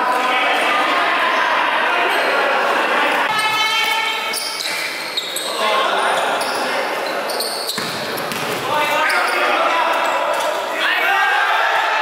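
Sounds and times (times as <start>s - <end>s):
players' voices and calls: 0.0s - 12.0s.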